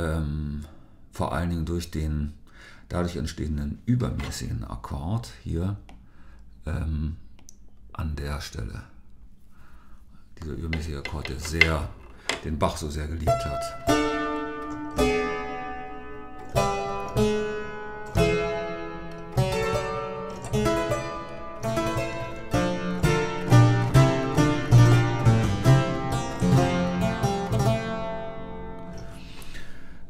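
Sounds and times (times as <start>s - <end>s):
harpsichord playing: 13.9s - 29.0s.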